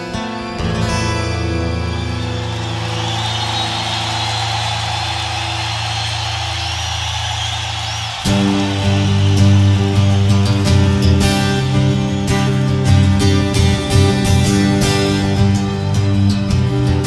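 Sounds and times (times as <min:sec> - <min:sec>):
crowd noise: 0:00.0 - 0:17.0
rock band chords: 0:00.0 - 0:17.0.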